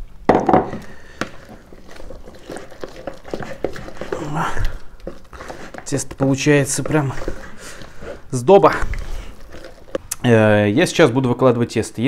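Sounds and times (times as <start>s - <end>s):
batter stirred in plastic bowl: 0.4s - 12.0s.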